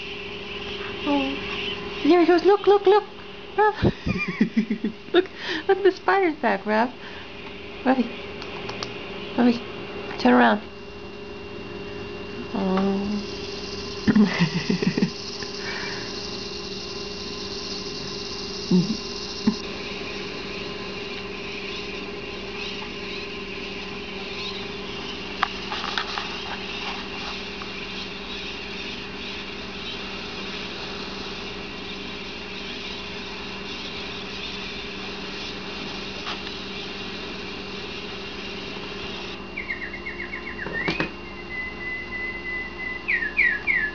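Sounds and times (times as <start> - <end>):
steady low hum: 0.0 - 43.9
budgerigar chirps and whistle: 21.5 - 23.3, 24.2 - 25.2, 31.8 - 35.6, 39.6 - 43.9.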